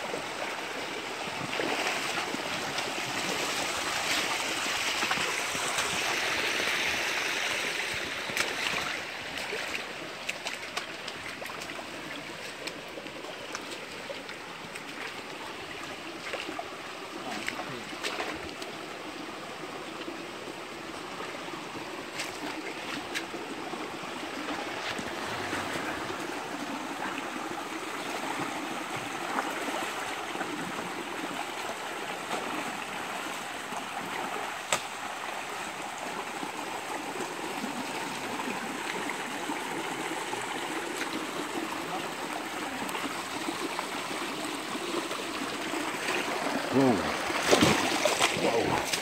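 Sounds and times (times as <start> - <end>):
creek water over rocks: 0.0 - 49.0
feet splashing in water: 1.3 - 6.3, 7.8 - 16.6, 17.2 - 18.8, 22.0 - 23.5, 45.6 - 49.0.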